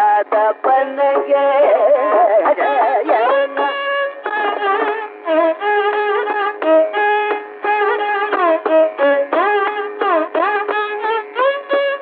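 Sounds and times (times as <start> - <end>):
classical concert music on radio: 0.0 - 7.8.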